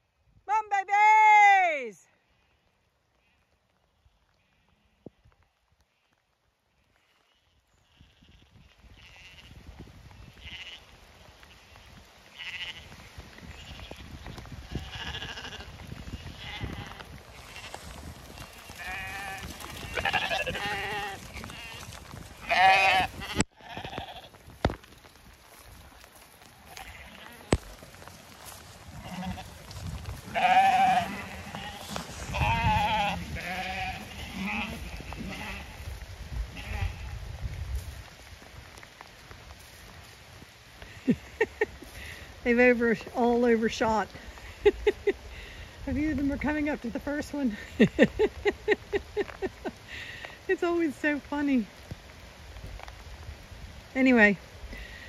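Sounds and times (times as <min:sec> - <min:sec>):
sheep bleating: 0:07.0 - 0:09.5, 0:10.4 - 0:10.9, 0:12.3 - 0:13.0, 0:14.6 - 0:24.4, 0:26.6 - 0:35.8.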